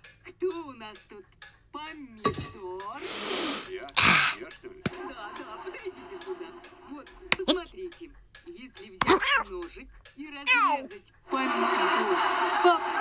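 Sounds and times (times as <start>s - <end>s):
breathy intake of breath: 3.0s - 4.4s
sharp burst of breath: 3.0s - 4.4s.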